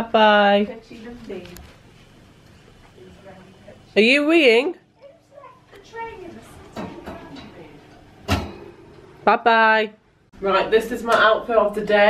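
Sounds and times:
faint talk: 4.9s - 8.0s.

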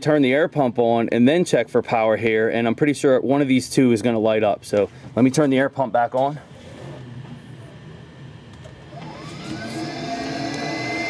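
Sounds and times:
electric air pump motor whine: 6.4s - 11.0s.

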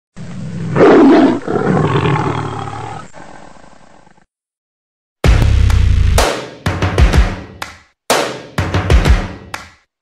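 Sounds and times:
large animal roaring: 0.5s - 4.2s.

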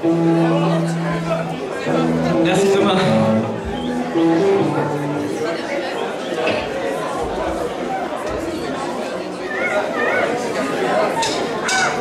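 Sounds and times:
audience chatter: 0.0s - 12.0s.

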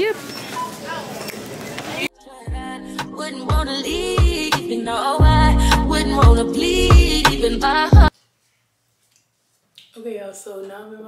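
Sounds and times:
background music: 2.1s - 8.1s
woman speaking: 10.0s - 11.0s.

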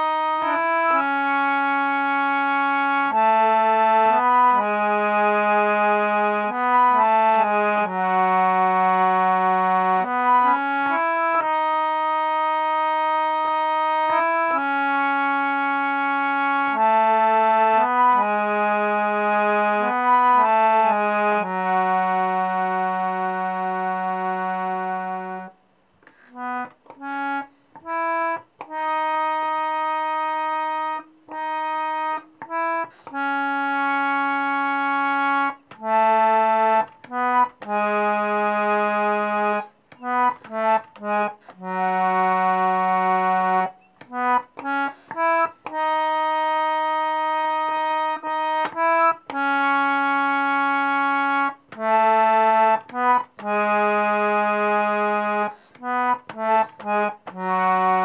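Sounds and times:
harmonium melody: 0.0s - 58.0s.

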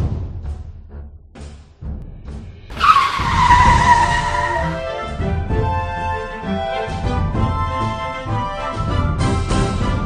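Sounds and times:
tire screech: 2.7s - 4.9s.

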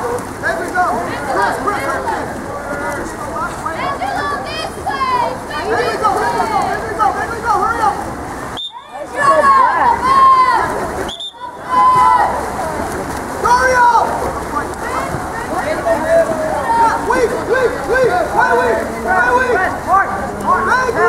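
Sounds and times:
water splashing: 0.0s - 21.0s
people shouting: 8.7s - 12.8s, 13.4s - 21.0s.

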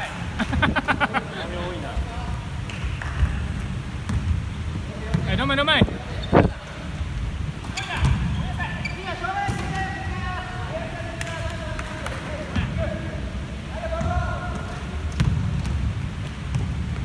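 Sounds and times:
basketball bouncing: 2.7s - 5.6s, 14.0s - 17.0s
shoes squeaking on floor: 5.2s - 6.6s, 7.6s - 9.8s.

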